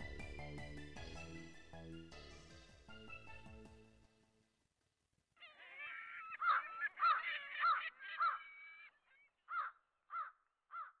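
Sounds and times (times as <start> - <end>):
large birds calling in flight: 5.4 - 11.0.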